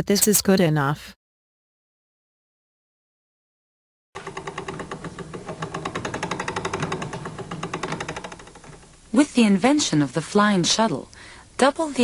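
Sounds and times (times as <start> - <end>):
loom clattering over hum: 4.2 - 11.1.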